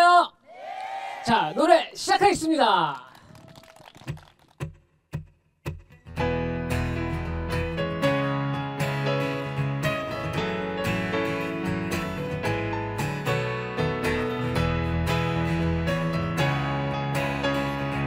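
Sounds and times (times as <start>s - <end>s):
acoustic guitar ballad with bass: 6.1s - 18.0s.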